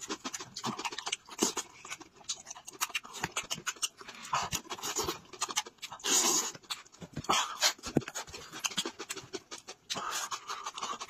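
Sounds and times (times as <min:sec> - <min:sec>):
man chewing and smacking: 0:00.0 - 0:11.0.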